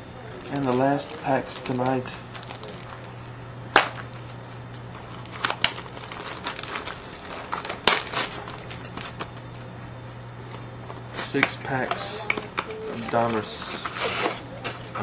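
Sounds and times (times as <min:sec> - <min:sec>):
low steady hum: 0:00.0 - 0:15.0
wrapper crinkling: 0:00.2 - 0:09.7.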